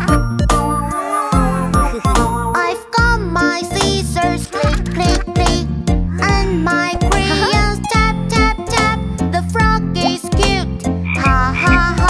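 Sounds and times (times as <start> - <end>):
children's song with singing: 1.0 - 12.0
cartoon frog croaking: 11.1 - 12.0.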